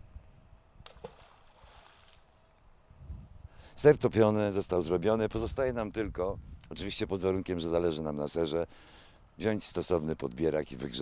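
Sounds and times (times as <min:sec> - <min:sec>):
small splash in pond: 0:00.8 - 0:02.6.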